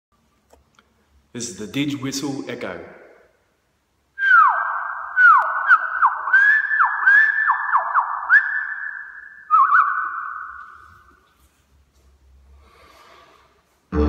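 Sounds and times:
man whistling bird-like calls: 4.2 - 11.2.

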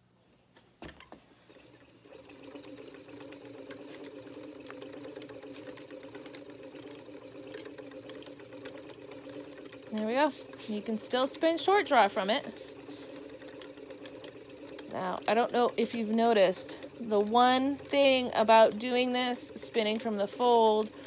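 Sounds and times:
spinning wheel whirring: 1.4 - 21.0.

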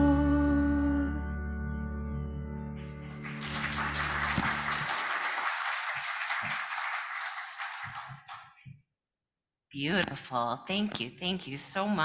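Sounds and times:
congregation applauding: 2.8 - 8.6.

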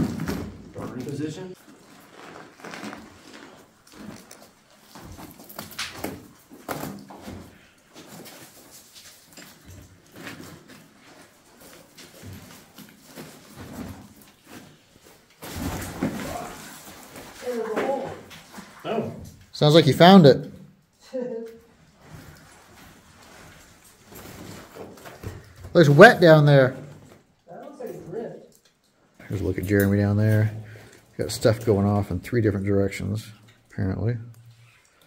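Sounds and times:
close handling and rustling: 0.0 - 19.6, 21.4 - 32.1.

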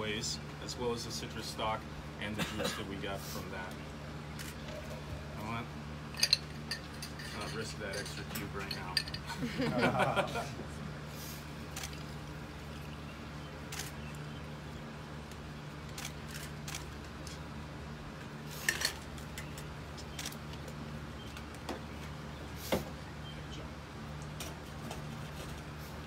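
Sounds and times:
steady low hum: 0.0 - 26.0.

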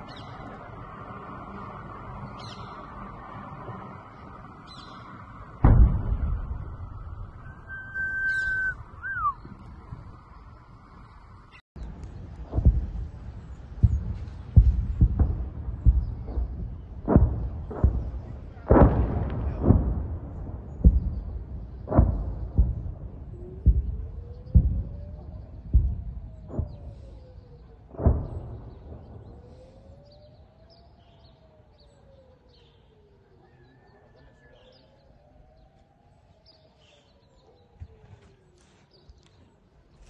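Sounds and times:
explosion low rumble: 2.4 - 30.8
rising and falling whistle: 6.2 - 9.7
steady high whistle: 6.3 - 9.6.

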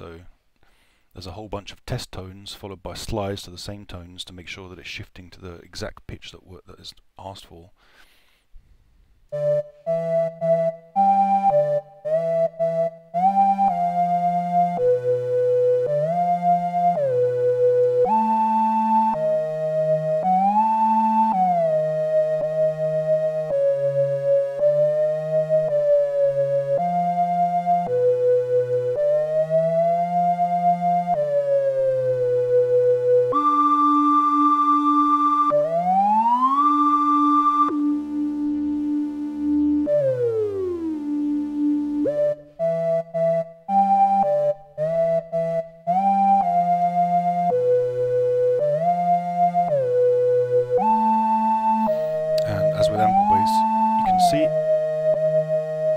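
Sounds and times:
synthesizer notes with pitch bends: 9.3 - 55.9.

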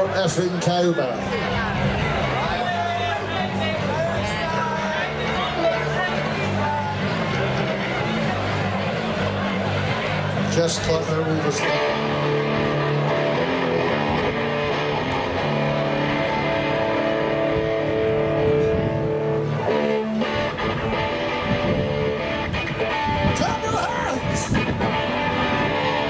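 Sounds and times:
electric guitar chords: 0.0 - 26.0.

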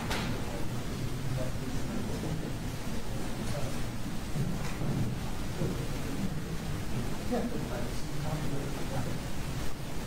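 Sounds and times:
faint indistinct voices: 0.0 - 10.0.

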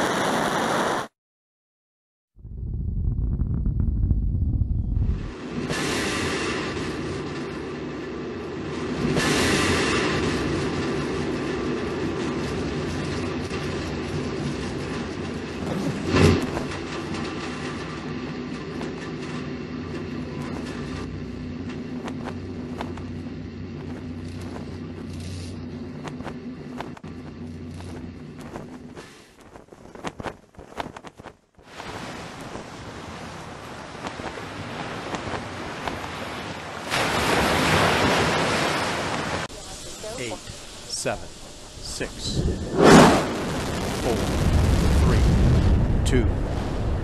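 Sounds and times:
heavy low rumble: 2.4 - 5.7, 9.7 - 29.0, 39.8 - 47.0
steady hum: 2.4 - 31.5, 39.5 - 45.6.

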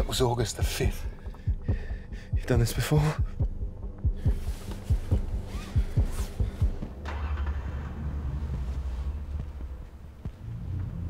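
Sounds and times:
low heartbeat-like thuds: 0.0 - 7.1, 8.3 - 11.0
steady low drone: 0.0 - 11.0.

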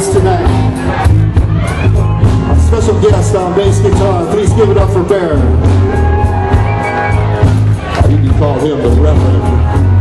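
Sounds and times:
electric bass guitar low notes: 0.0 - 10.0
live blues band playing: 0.0 - 10.0.

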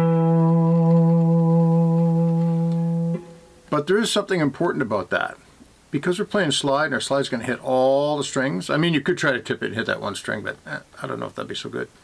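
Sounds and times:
slide guitar note ringing: 0.0 - 3.7.

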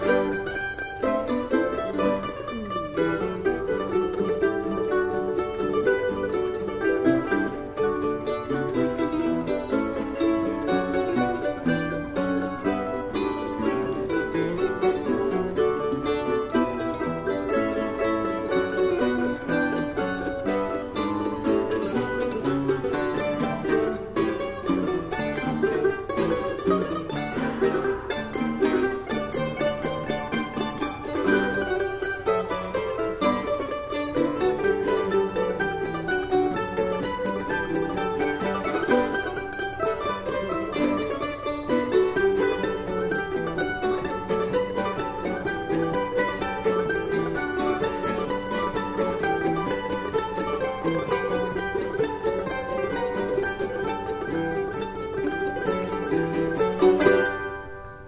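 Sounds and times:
mandolin orchestra playing: 0.0 - 58.0.

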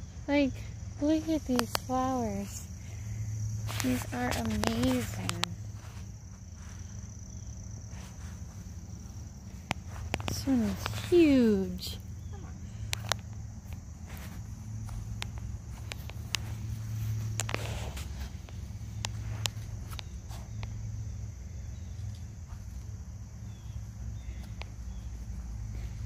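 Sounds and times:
low outdoor rumble: 0.0 - 26.0
soft footsteps: 3.5 - 20.8, 22.4 - 26.0.

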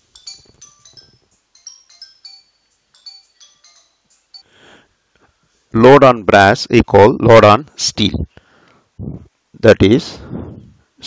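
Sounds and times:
faint high-pitched clinks: 0.0 - 4.5.

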